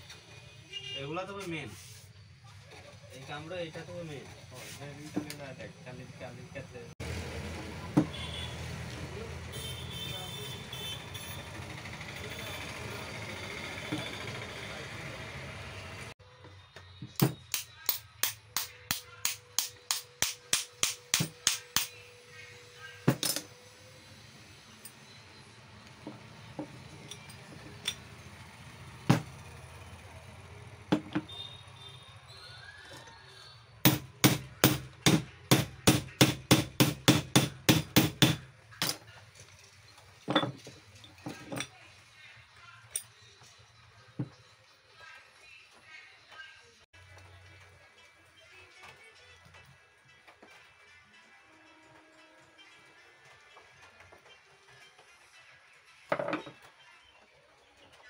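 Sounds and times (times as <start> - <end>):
hammer tapping on metal: 17.1 - 22.0, 33.9 - 39.0.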